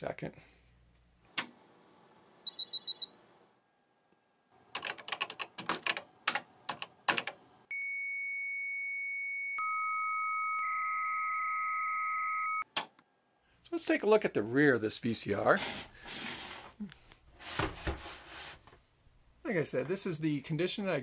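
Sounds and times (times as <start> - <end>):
typing on computer keyboard: 4.8 - 7.4.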